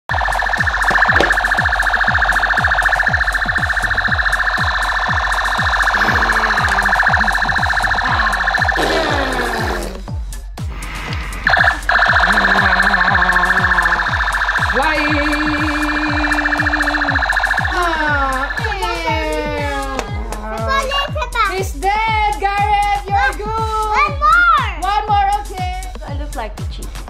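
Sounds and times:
toy blaster electronic warble: 0.1 - 9.8, 11.5 - 18.8.

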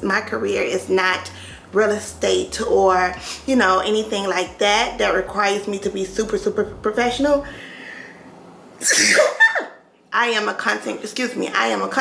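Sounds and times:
woman sneezing: 8.8 - 9.8.

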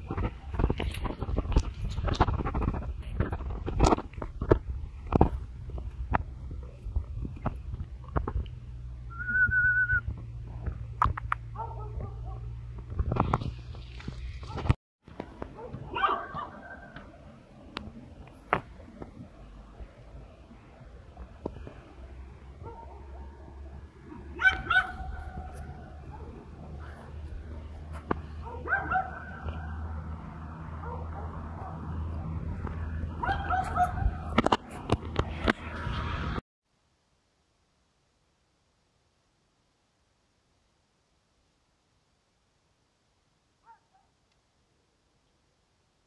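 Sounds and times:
dog barking: 11.5 - 12.5, 15.6 - 17.0, 22.6 - 23.4, 24.4 - 26.8, 28.4 - 29.5, 30.8 - 31.9, 33.2 - 34.2, 43.6 - 44.1.

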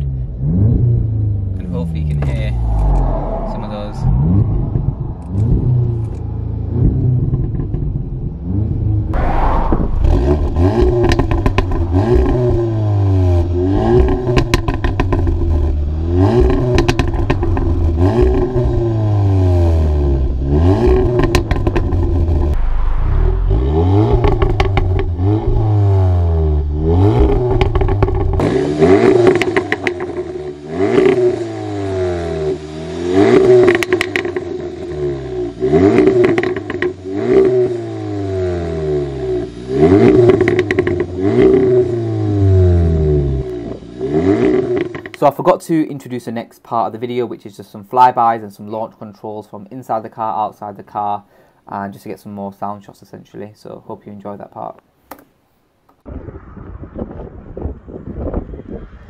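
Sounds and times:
car engine revving: 0.0 - 45.2
exhaust crackles: 0.0 - 45.9.

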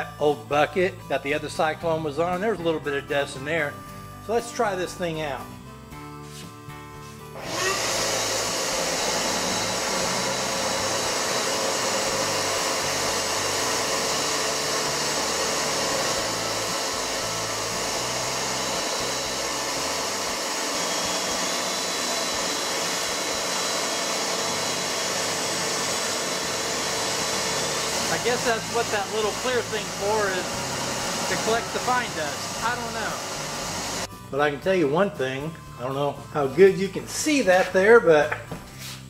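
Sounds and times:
shop vacuum running: 7.2 - 34.1
sawdust sucked through hose: 7.4 - 34.1.

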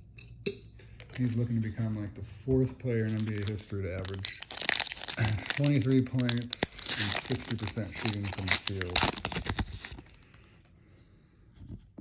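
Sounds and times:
foil wrapper crinkling: 3.0 - 10.4.

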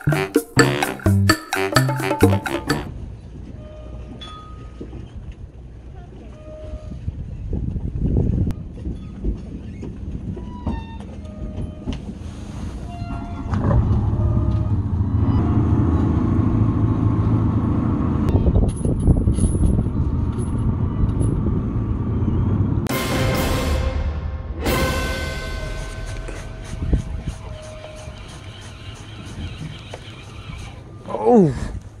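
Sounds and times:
boat engine drone: 12.5 - 18.3, 19.8 - 31.4.

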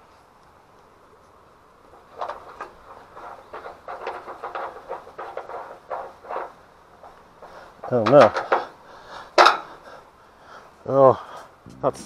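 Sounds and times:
nut scraping and rattling on bolt: 1.9 - 10.0.

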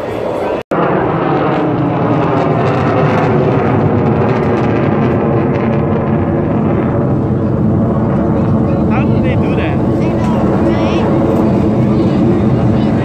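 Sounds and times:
jet engines overhead: 0.0 - 13.0.

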